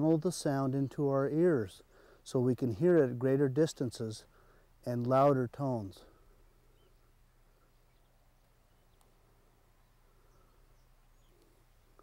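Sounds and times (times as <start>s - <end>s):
soft bird chirps: 6.0s - 12.0s.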